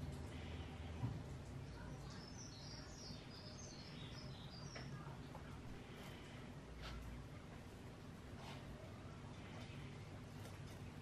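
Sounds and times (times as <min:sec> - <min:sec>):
faint bird chirping: 0:00.0 - 0:07.5
low room hum: 0:00.0 - 0:11.0.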